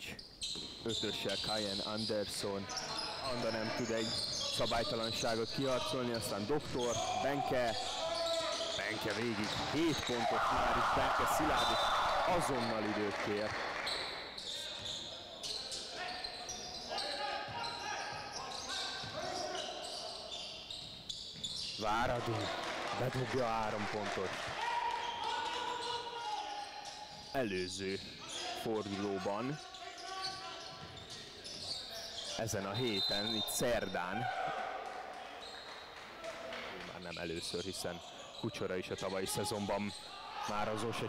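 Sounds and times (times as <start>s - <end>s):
sneakers squeaking: 0.0s - 13.1s, 13.8s - 22.5s, 24.9s - 41.0s
basketball game courtside: 0.0s - 41.0s.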